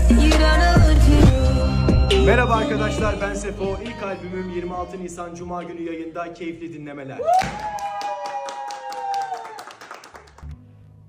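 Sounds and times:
rapid hand clapping: 7.4 - 10.5.

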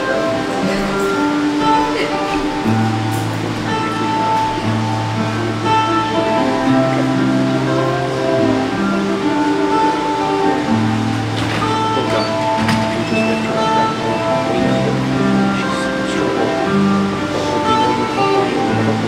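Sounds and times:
guitar chords: 0.0 - 19.0
slow bass line: 0.0 - 19.0.

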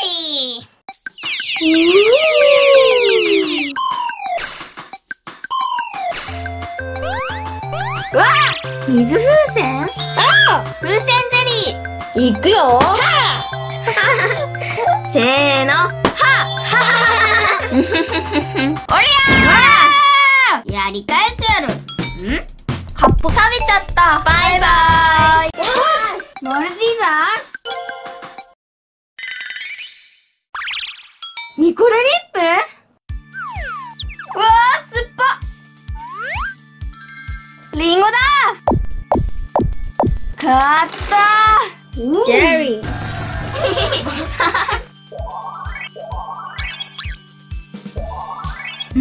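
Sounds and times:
child's wavering vocal sound: 1.7 - 3.8.

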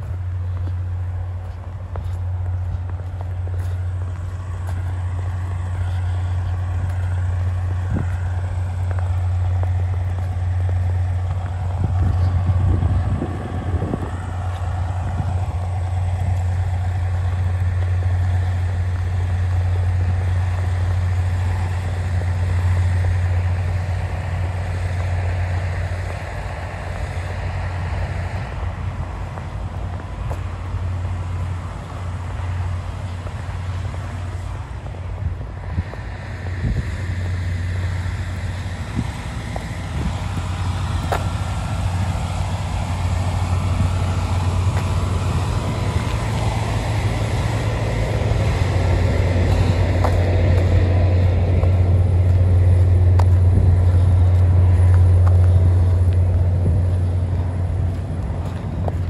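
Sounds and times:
engine droning: 0.0 - 59.0.

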